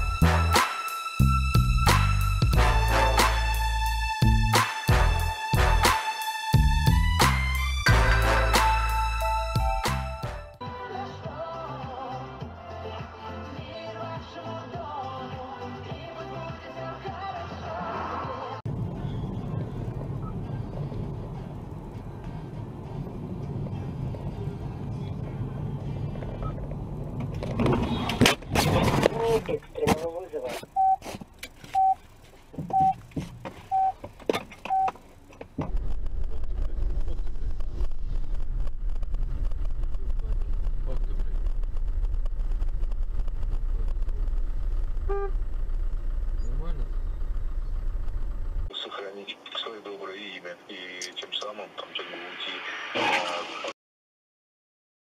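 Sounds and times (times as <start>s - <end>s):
vehicle road rumble: 18.4s - 50.4s
beeps: 30.8s - 31.0s, 31.7s - 32.0s, 32.7s - 33.0s, 33.7s - 34.0s, 34.7s - 35.0s
voices: 48.7s - 53.6s.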